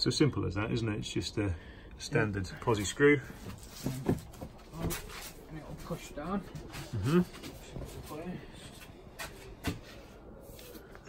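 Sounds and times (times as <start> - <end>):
light rubbing of shelf parts: 2.6 - 11.0
murmured voice: 6.6 - 8.8.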